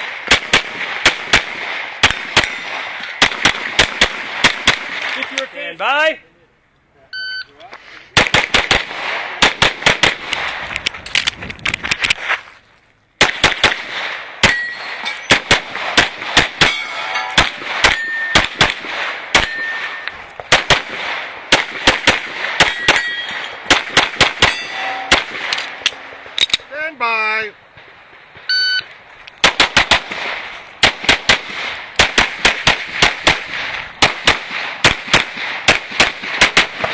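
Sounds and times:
pistol shots: 0:00.0 - 0:05.5, 0:08.2 - 0:10.8, 0:13.2 - 0:26.7, 0:29.4 - 0:36.9
shot timer beep: 0:07.1 - 0:07.5, 0:28.5 - 0:28.9
steel targets ringing: 0:14.4 - 0:15.4, 0:16.6 - 0:20.4, 0:22.6 - 0:23.7, 0:24.3 - 0:26.0.

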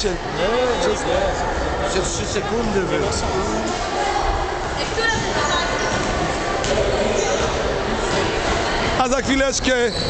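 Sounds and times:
echoing indistinct chatter: 0:00.0 - 0:10.0.

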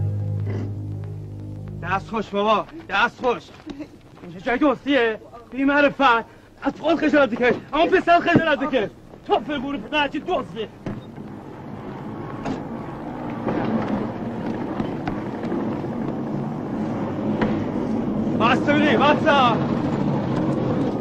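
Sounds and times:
motor vehicle engine running: 0:00.0 - 0:02.9, 0:10.7 - 0:21.0.

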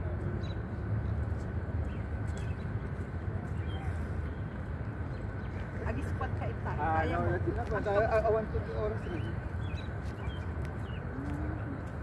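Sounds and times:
faint voices: 0:02.8 - 0:05.0, 0:05.6 - 0:12.0.

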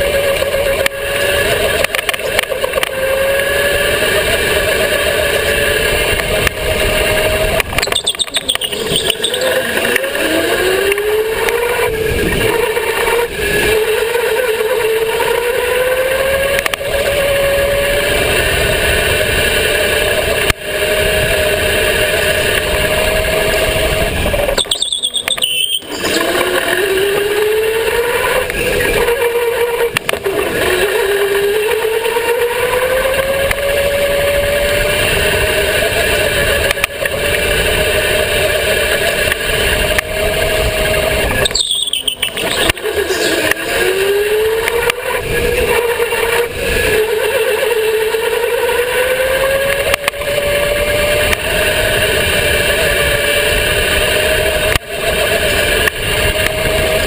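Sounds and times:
electric go-kart motor whining: 0:00.0 - 0:57.0
track rumble: 0:00.0 - 0:57.0
wind: 0:00.0 - 0:57.0.

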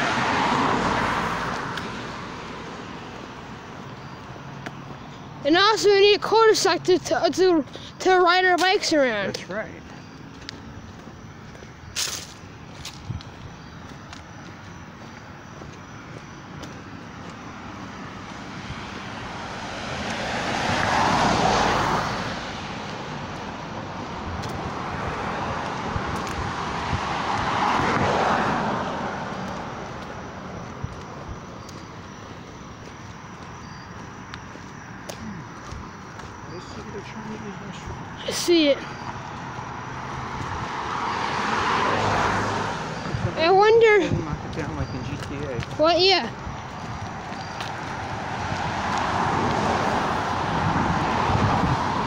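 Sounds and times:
distant traffic hum: 0:00.0 - 0:52.0
vehicles passing close by: 0:00.0 - 0:52.0.

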